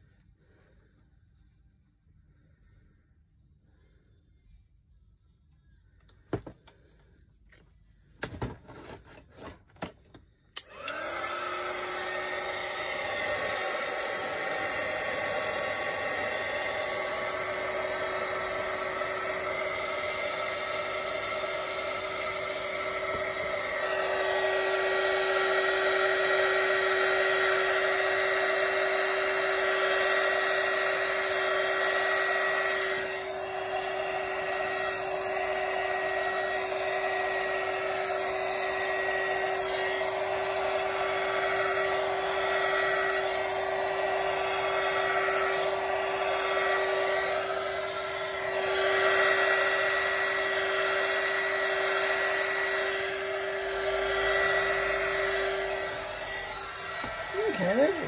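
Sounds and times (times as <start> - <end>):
hair dryer running: 9.8 - 58.0.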